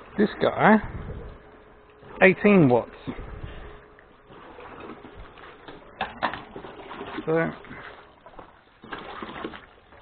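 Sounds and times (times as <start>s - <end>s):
diaphragm pump pumping water: 0.0s - 10.0s.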